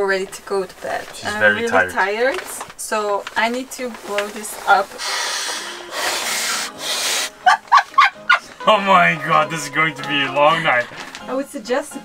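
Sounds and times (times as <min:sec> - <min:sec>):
person blowing into a valve: 0:05.0 - 0:07.6.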